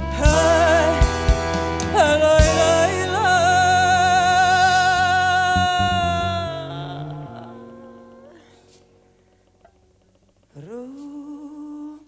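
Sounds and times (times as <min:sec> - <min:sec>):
band playing sustained notes: 0:00.0 - 0:09.3.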